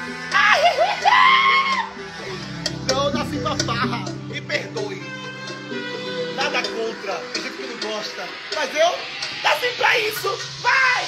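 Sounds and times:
background music: 0:00.0 - 0:11.0
person screaming high-pitched: 0:00.4 - 0:01.9.

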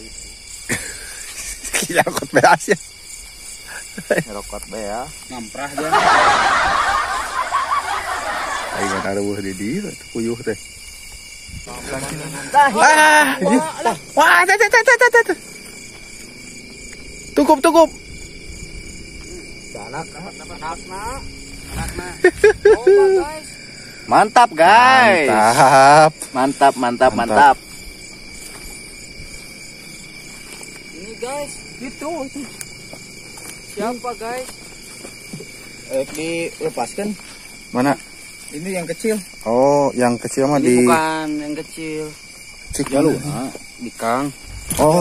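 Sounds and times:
night insects chirring: 0:00.0 - 0:45.0
man laughing: 0:00.7 - 0:02.4, 0:03.7 - 0:04.4, 0:05.7 - 0:09.2, 0:12.5 - 0:15.4, 0:21.8 - 0:23.4
people talking and exclaiming: 0:05.4 - 0:09.8
rustling of tall grass: 0:21.0 - 0:23.1, 0:27.4 - 0:31.2.

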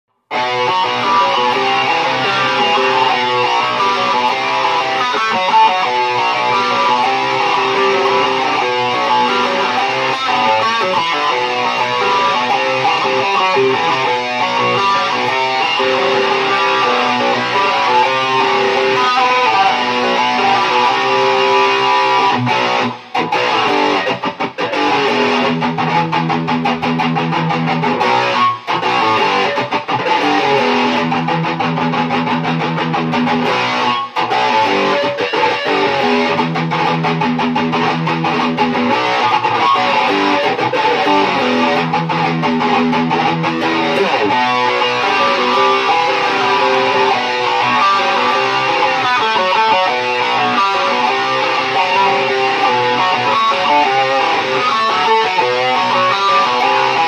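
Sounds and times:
electric guitar melodic lead: 0:00.2 - 0:57.0.

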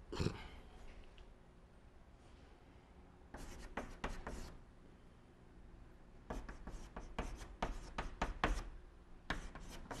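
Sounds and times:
chalk scratching on blackboard: 0:03.3 - 0:04.6, 0:06.3 - 0:08.7, 0:09.3 - 0:10.0.

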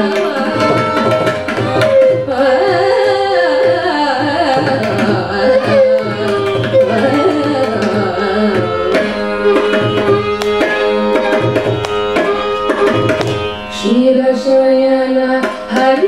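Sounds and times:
violin accompaniment: 0:00.0 - 0:16.0
steady drone: 0:08.4 - 0:15.6
woman singing ornamented melody: 0:13.7 - 0:16.0.

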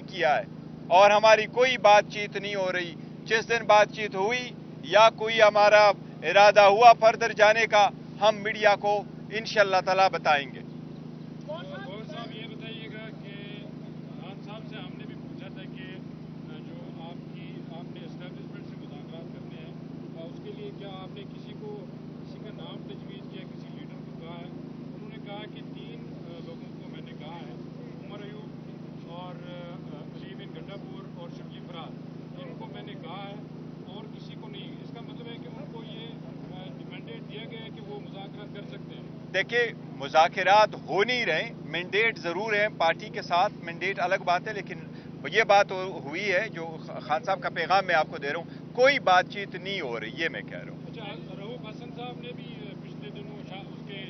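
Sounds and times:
distant voices talking: 0:00.0 - 0:54.0
steady low hum: 0:00.0 - 0:54.0.

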